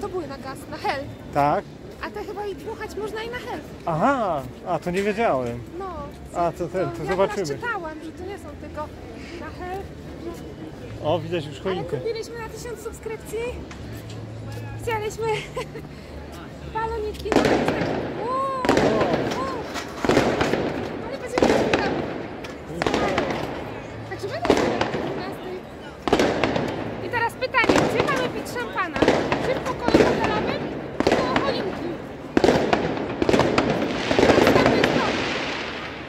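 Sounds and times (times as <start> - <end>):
firecrackers crackling: 16.9 - 36.0
fireworks bangs echoing: 17.3 - 36.0.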